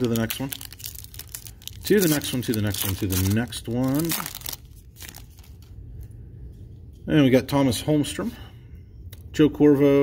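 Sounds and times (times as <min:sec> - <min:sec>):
foil wrapper crinkling: 0:00.0 - 0:05.7
low room noise: 0:00.0 - 0:10.0.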